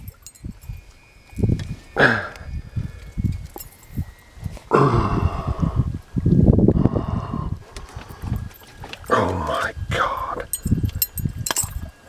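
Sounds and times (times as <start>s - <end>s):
man breathing heavily: 2.0s - 3.1s, 4.7s - 6.0s, 6.7s - 8.6s.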